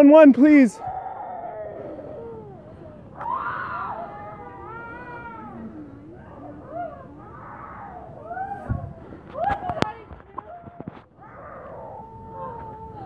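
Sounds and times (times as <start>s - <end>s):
distant shouted cries: 0.0s - 9.6s.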